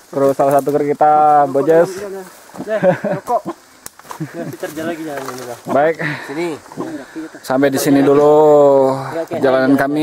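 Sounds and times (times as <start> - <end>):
man speaking: 0.1 - 3.6, 4.3 - 10.0.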